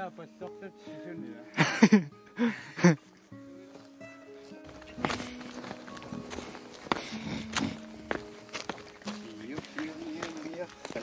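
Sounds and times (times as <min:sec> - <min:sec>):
faint music: 0:00.0 - 0:11.0
footsteps on rocky ground: 0:03.0 - 0:11.0.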